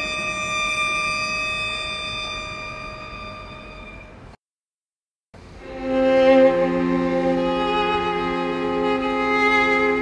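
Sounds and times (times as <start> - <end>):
violin long high bowed note: 0.0 - 4.3, 5.6 - 10.0.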